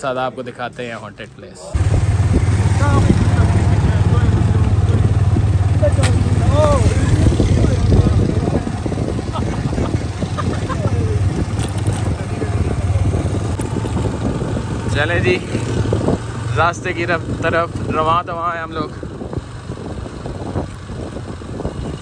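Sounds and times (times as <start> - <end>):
motorcycle engine running: 1.7 - 22.0
wind rushing over microphone: 1.7 - 22.0.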